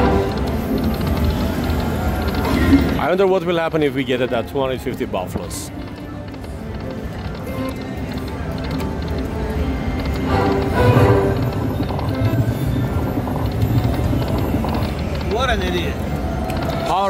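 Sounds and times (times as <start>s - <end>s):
slot machine game music: 0.0s - 17.0s
slot machine reel-spin sounds: 0.0s - 17.0s.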